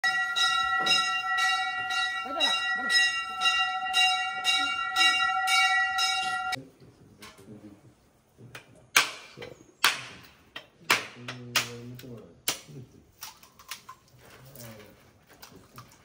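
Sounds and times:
temple bell ringing: 0.0s - 6.6s.

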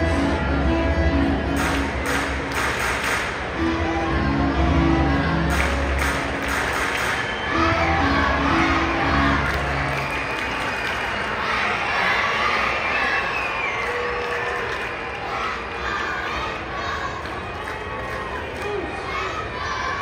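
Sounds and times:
crowd chattering and cheering: 0.0s - 20.0s
stadium music over loudspeakers: 0.0s - 20.0s.

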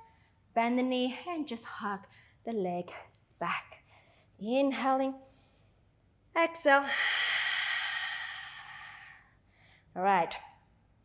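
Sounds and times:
woman exhaling: 6.8s - 9.3s.

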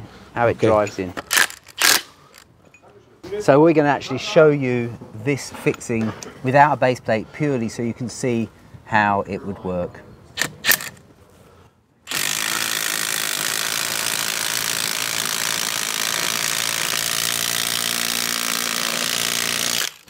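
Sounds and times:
impact wrench running: 1.3s - 2.4s, 12.1s - 20.0s.

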